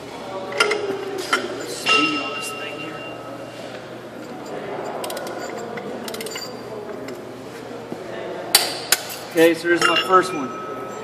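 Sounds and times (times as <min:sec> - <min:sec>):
workshop background noise: 0:00.0 - 0:11.0.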